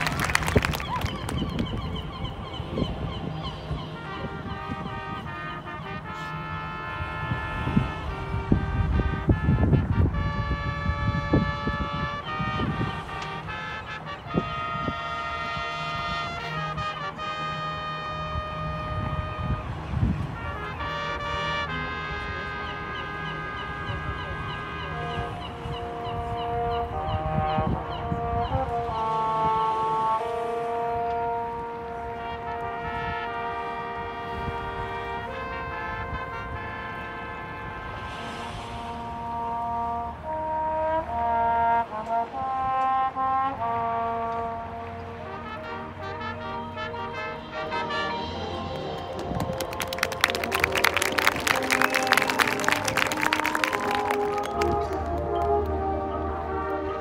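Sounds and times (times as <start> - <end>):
brass chords: 0.0 - 57.0.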